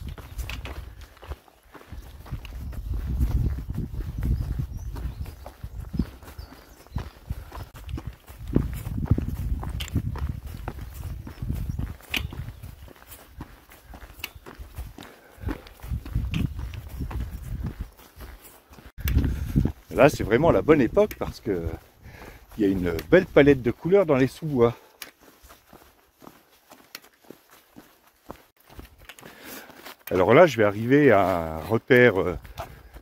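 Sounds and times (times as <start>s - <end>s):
wind buffeting microphone: 0.0s - 23.8s
footsteps on gravel path: 0.0s - 33.0s.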